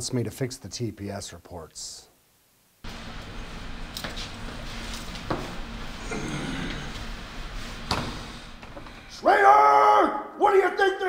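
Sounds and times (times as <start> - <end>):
steady hiss and low hum: 0.0 - 11.0.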